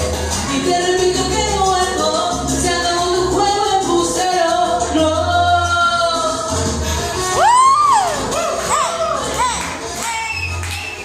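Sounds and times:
karaoke backing track: 0:00.0 - 0:11.0
woman singing into a microphone: 0:00.4 - 0:10.7.

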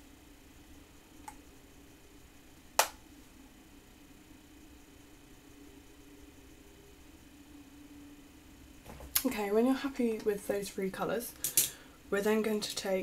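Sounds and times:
faint low hum: 0:00.0 - 0:13.0
sharp click: 0:02.8 - 0:03.0.

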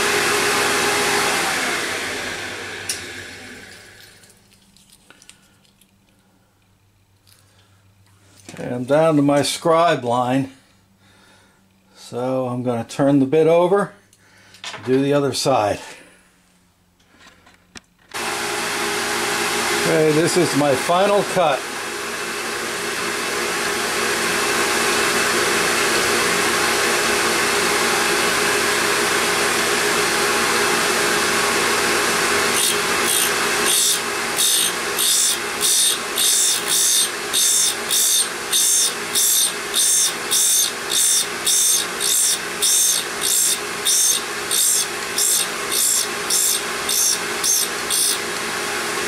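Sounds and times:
grinder wheel grinding metal: 0:18.2 - 0:21.6, 0:23.4 - 0:49.0.

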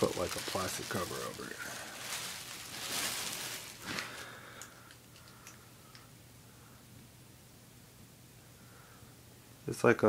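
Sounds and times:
plastic sheet crinkling: 0:00.0 - 0:04.5.

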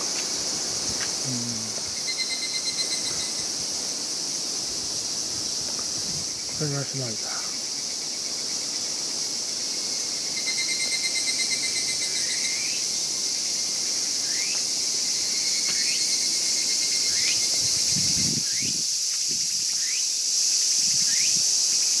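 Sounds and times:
insects chorus: 0:00.0 - 0:22.0.

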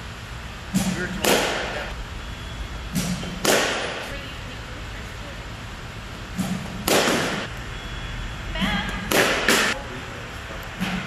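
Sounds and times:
bat hitting ball crack: 0:03.0 - 0:04.0, 0:06.8 - 0:07.4.

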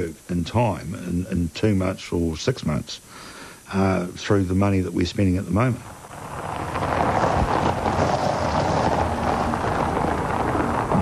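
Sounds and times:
tyres crunching on gravel: 0:04.8 - 0:11.0.

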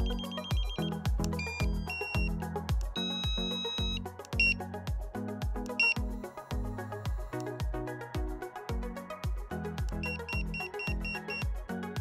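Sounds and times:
short high beeps: 0:00.0 - 0:02.3, 0:03.0 - 0:04.6
high multi-note pager tone: 0:00.0 - 0:02.4, 0:03.0 - 0:04.6, 0:10.0 - 0:11.4
background music with steady beat: 0:00.0 - 0:12.0.

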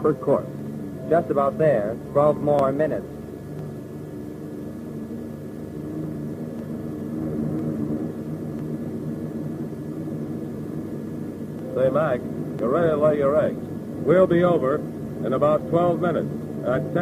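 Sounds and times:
propeller plane engines droning: 0:00.0 - 0:17.0.

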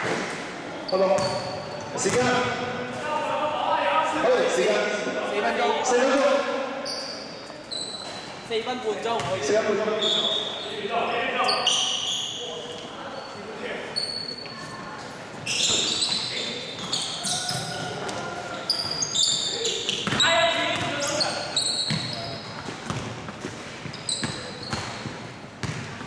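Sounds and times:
sneaker squeaks: 0:00.0 - 0:02.6, 0:06.8 - 0:10.8, 0:11.4 - 0:26.0
basketball dribbling on hardwood: 0:22.7 - 0:23.4, 0:24.2 - 0:26.0.

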